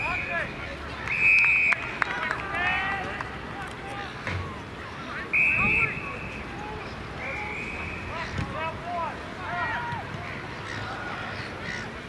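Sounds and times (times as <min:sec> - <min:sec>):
distant shouts and calls: 0:00.0 - 0:12.0.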